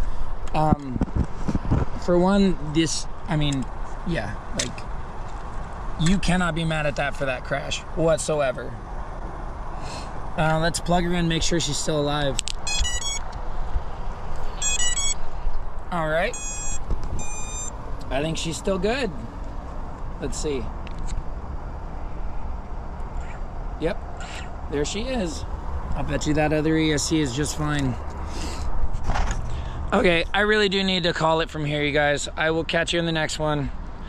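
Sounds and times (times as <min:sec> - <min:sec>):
wind rumbling on microphone: 0:00.0 - 0:02.3
short beeps from motors: 0:12.6 - 0:13.3, 0:14.6 - 0:15.2, 0:16.3 - 0:17.8.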